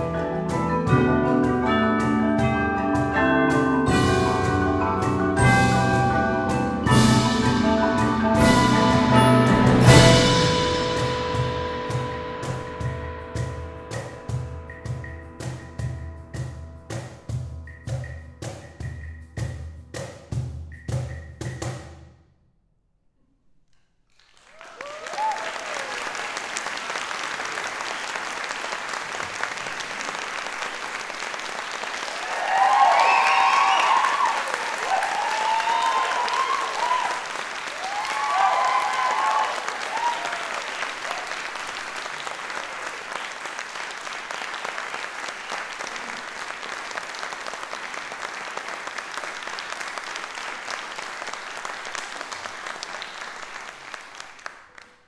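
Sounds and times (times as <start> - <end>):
audience applauding: 24.1 - 55.0
voices cheering: 24.6 - 26.4, 32.0 - 41.6.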